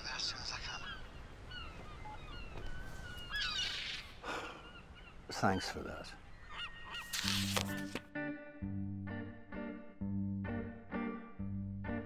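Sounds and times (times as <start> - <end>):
low steady background noise: 0.0 - 6.6
birds chirping: 0.0 - 7.9.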